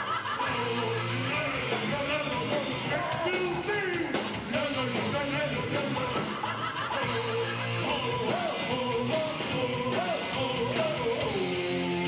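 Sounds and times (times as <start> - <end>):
electric guitar: 0.0 - 12.0
heavy metal band playing: 0.0 - 12.0.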